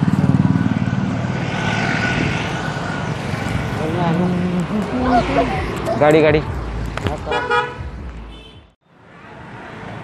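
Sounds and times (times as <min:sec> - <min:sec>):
vehicle passing close by: 0:00.0 - 0:08.2.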